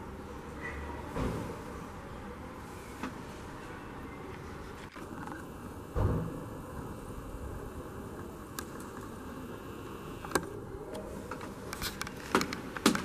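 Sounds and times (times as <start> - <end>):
outdoor background noise: 0.0 - 13.0.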